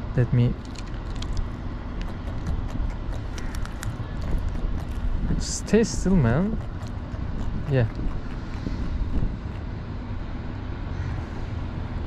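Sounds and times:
wind rumble on microphone: 0.9s - 10.3s.

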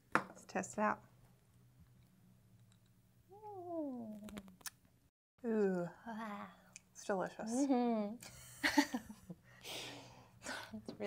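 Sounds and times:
faint room hum: 0.1s - 11.0s
woman humming mmm: 3.3s - 4.5s.

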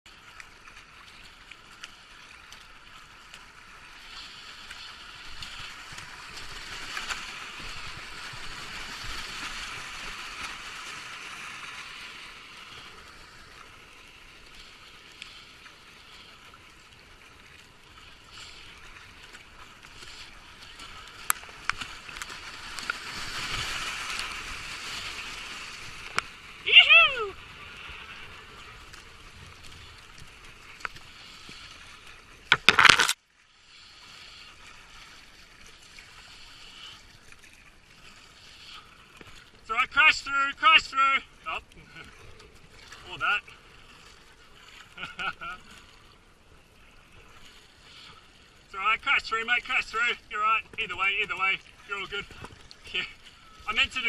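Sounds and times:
paddle strokes splashing: 0.1s - 54.0s
rushing water: 0.1s - 54.0s
person crying out: 26.6s - 27.4s.

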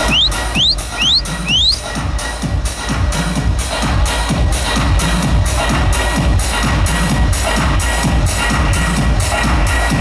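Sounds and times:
techno over sound system: 0.0s - 1.8s
whistle-like synth sweep: 0.0s - 1.8s.

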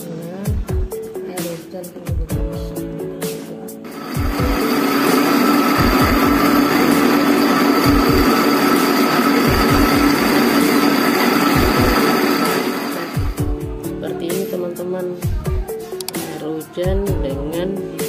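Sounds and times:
blender motor whining: 3.9s - 13.4s.

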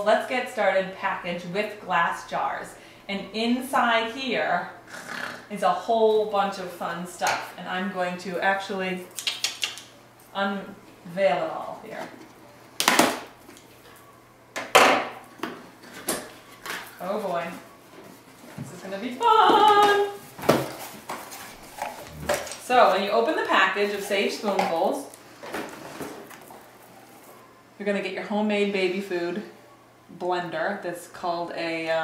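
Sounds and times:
woman speaking: 0.0s - 4.8s, 5.5s - 9.1s, 10.4s - 12.2s, 17.0s - 17.7s, 18.6s - 20.2s, 22.6s - 25.2s, 27.8s - 32.0s
cardboard rustling and scraping: 15.8s - 22.8s, 25.4s - 27.3s.

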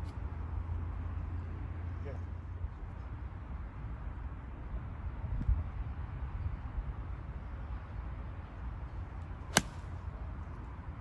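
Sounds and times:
golf club striking ball: 9.5s - 9.9s.

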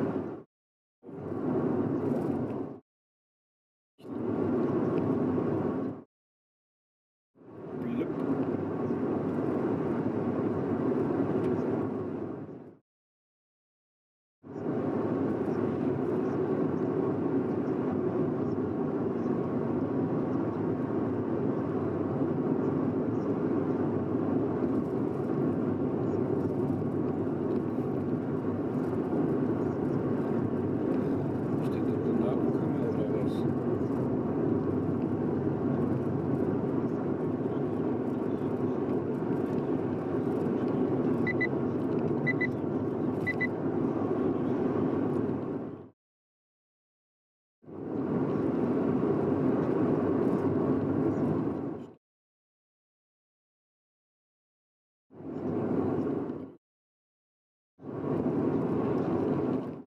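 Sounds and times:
car road and engine noise: 0.0s - 0.5s, 1.1s - 2.8s, 4.0s - 6.1s, 7.4s - 12.8s, 14.5s - 45.9s, 47.7s - 52.0s, 55.2s - 56.6s, 57.8s - 59.8s
short high beeps: 41.3s - 41.5s, 42.3s - 42.6s, 43.3s - 43.5s.

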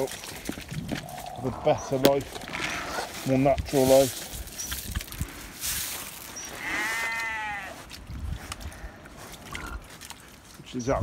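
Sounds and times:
wind rumble on microphone: 0.3s - 5.6s, 7.9s - 10.0s
farm animal call: 6.4s - 7.9s.

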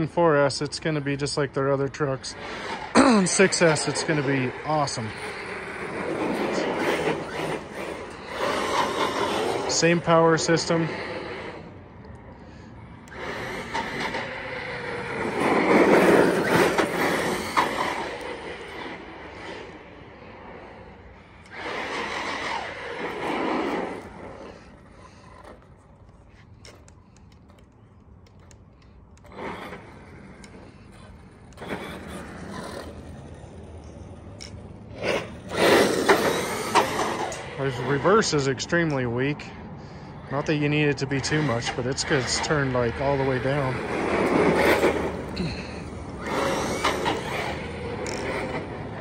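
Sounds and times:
rc truck motor driving on asphalt: 0.0s - 49.0s.

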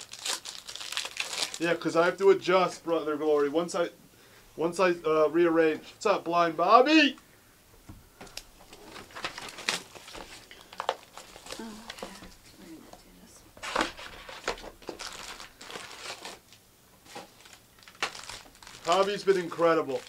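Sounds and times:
wrappers tearing and crinkling: 0.0s - 1.9s, 8.3s - 12.2s, 13.6s - 20.0s.

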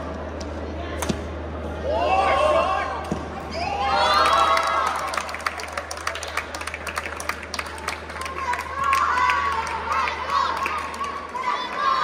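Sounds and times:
people clapping: 4.1s - 12.0s.

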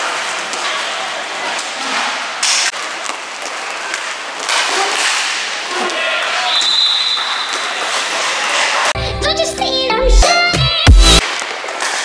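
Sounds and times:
hockey sticks knocking: 2.4s - 8.7s, 11.2s - 12.0s.

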